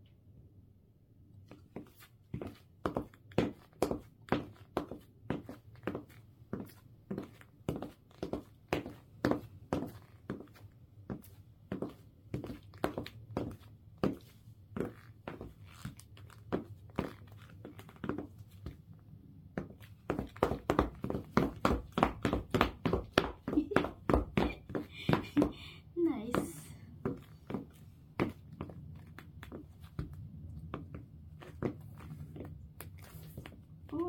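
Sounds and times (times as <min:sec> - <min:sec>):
high-heel footsteps on wooden floor: 0:01.8 - 0:18.8, 0:19.6 - 0:25.6, 0:26.3 - 0:33.6.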